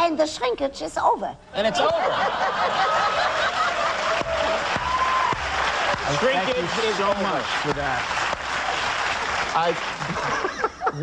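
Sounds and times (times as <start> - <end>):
audience laughter: 1.6 - 4.4, 9.8 - 11.0
audience applauding: 1.8 - 10.8.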